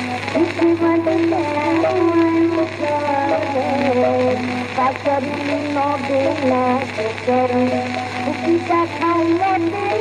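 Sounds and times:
record surface hiss: 0.0s - 10.0s
woman singing devotional song: 0.0s - 10.0s.

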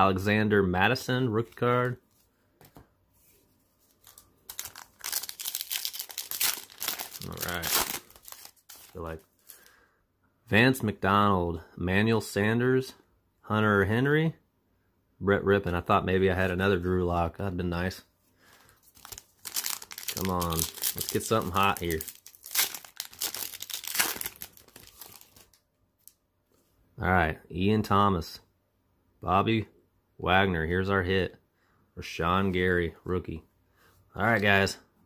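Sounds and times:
plastic wrapper tearing and crinkling: 3.9s - 9.6s, 18.8s - 26.2s.

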